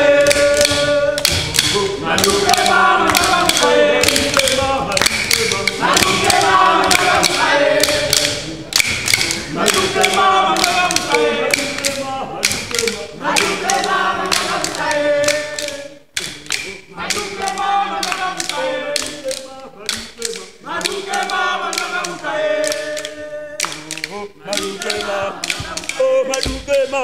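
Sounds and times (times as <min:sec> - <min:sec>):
group chanting in unison: 0:00.0 - 0:27.0
wooden sticks struck: 0:00.0 - 0:27.0.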